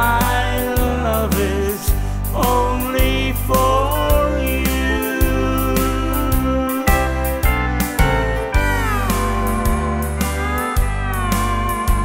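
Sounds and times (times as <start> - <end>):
bass and steady beat: 0.0 - 12.0
steel guitar sliding down: 7.8 - 12.0.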